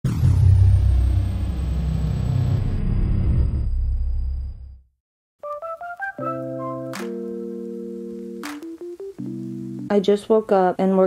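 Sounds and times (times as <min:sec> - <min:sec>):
deep cinematic rumble: 0:00.0 - 0:04.9.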